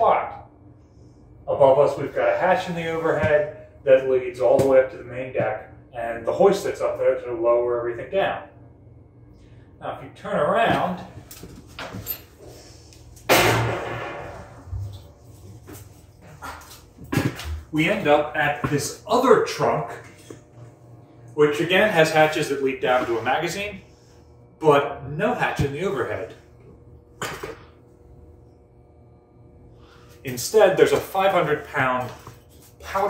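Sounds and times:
low hum with faint tones: 0:00.0 - 0:33.0
loud metallic clang: 0:13.3 - 0:14.7.

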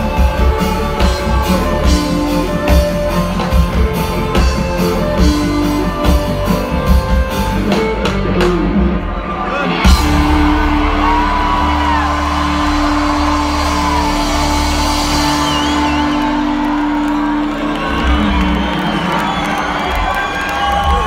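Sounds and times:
reggae band playing: 0:00.0 - 0:20.0
crowd cheering and whooping: 0:00.0 - 0:21.0.

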